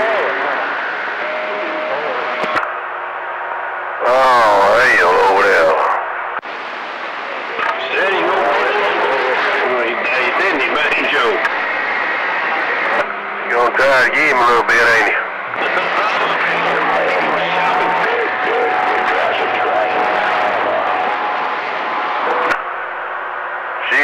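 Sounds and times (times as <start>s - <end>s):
radio static hiss: 0.0s - 24.0s
garbled radio voices: 4.0s - 6.1s, 7.1s - 22.6s, 23.8s - 24.0s.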